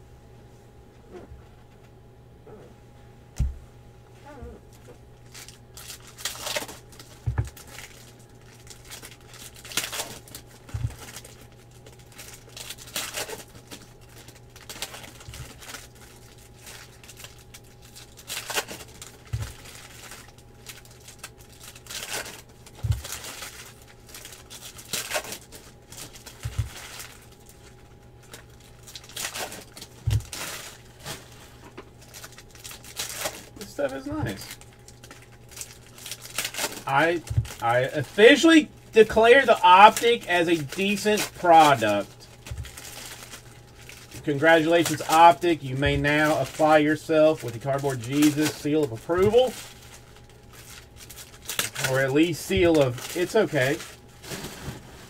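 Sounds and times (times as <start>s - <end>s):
low electrical hum: 0.0s - 55.0s
foil wrappers crinkling and tearing: 4.7s - 55.0s.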